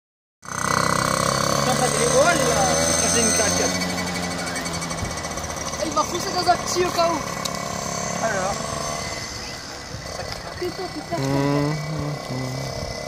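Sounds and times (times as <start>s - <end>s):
motorcycle engine running: 0.4s - 13.0s
people's voices: 9.3s - 13.0s.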